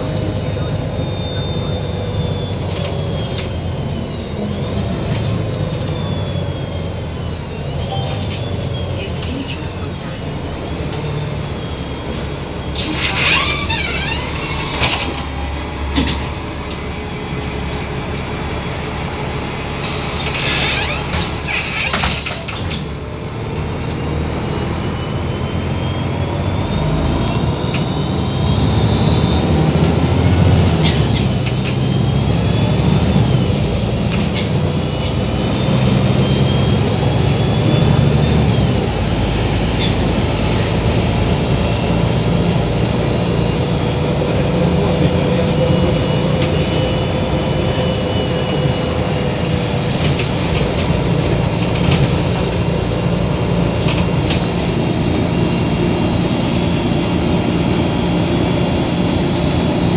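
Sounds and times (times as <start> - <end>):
bus diesel engine running: 0.0 - 59.9.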